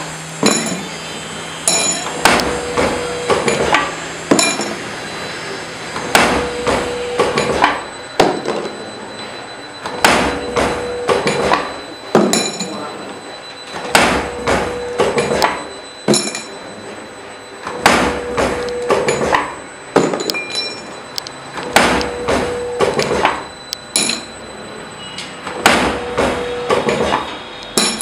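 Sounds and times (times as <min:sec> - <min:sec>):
machine hum: 0:00.0 - 0:28.0.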